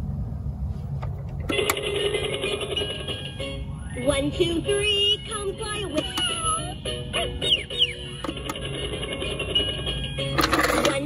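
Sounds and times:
toy playing electronic tune: 0:01.5 - 0:11.0.

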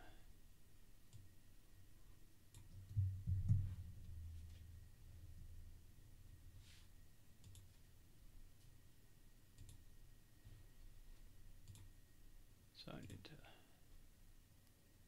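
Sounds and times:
computer mouse clicks: 0:01.1 - 0:01.3, 0:07.4 - 0:07.7, 0:09.6 - 0:09.8, 0:11.6 - 0:11.9.

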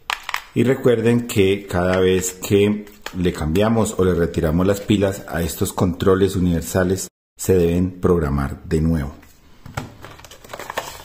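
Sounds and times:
paper packaging crinkling: 0:10.0 - 0:11.0.

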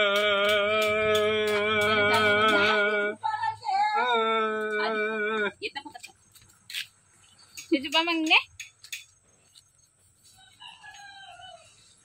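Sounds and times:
person singing with vibrato: 0:00.0 - 0:05.8
rooster crowing: 0:10.3 - 0:12.0.

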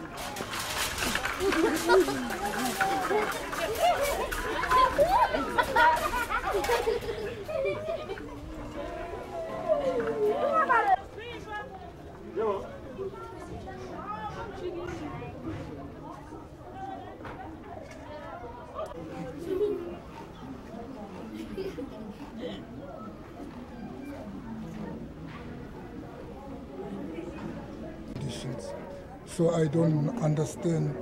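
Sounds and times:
people chattering and calling out: 0:00.0 - 0:31.0.

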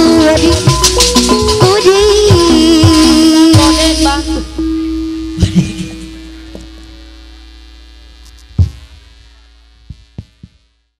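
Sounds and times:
percussion strikes: 0:00.0 - 0:07.5, 0:08.2 - 0:09.1, 0:09.9 - 0:10.7.

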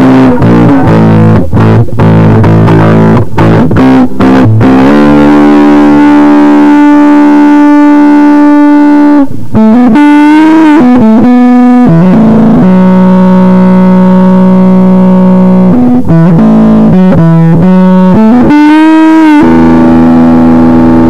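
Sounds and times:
distorted electric guitar riff: 0:00.0 - 0:21.0.

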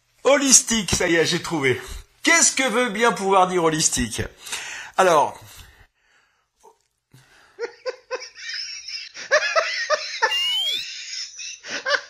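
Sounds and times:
laugh track: 0:07.6 - 0:12.0
high rising squeal: 0:10.3 - 0:10.8.

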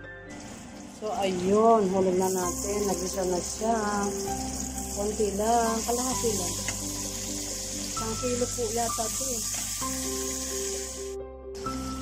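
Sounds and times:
shrimp frying in a wok: 0:02.0 - 0:11.2.

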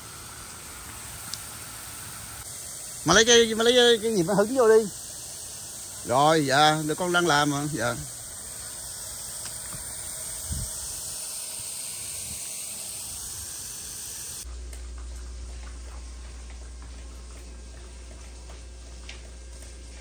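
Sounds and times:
hose spraying water on roof: 0:00.0 - 0:20.0
low hum: 0:08.0 - 0:20.0.

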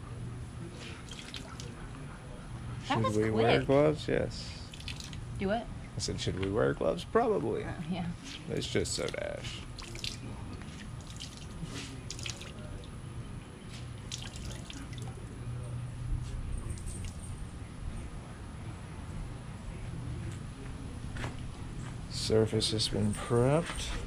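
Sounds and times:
water dripping into tub: 0:04.7 - 0:05.2, 0:09.8 - 0:10.2, 0:11.0 - 0:11.5, 0:12.1 - 0:12.9, 0:14.1 - 0:15.1.

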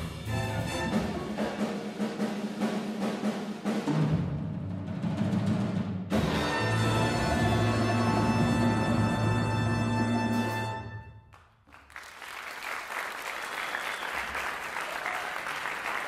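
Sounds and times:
jazz big band playing: 0:00.0 - 0:11.2.

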